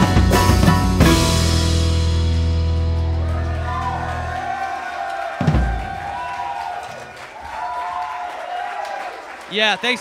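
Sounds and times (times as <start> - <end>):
jazz trio playing: 0.0 - 3.7.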